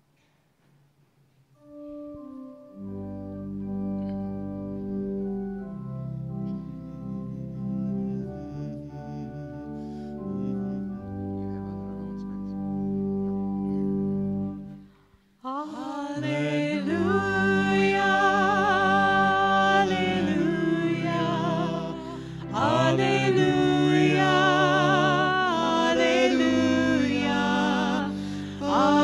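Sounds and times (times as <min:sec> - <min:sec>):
keyboard playing slow chords: 0:01.6 - 0:15.2, 0:16.2 - 0:29.0.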